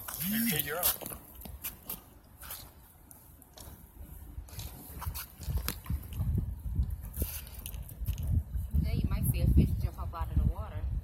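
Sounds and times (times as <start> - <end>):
wind buffeting microphone: 3.0 - 11.0.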